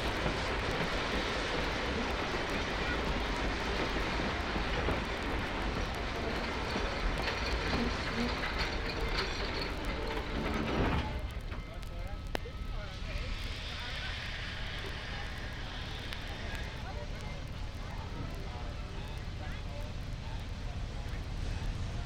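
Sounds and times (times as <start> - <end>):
train rumbling: 0.0 - 22.0
disc crackle: 4.7 - 21.3.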